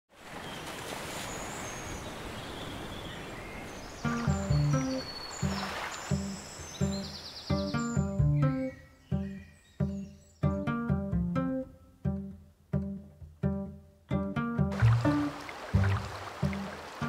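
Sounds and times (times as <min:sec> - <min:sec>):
outdoor ambient hiss: 0:00.2 - 0:17.0
plucked low string music: 0:04.1 - 0:17.0.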